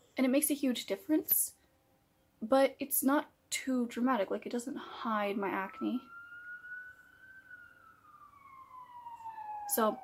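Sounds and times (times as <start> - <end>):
faint wailing siren: 4.8 - 10.0.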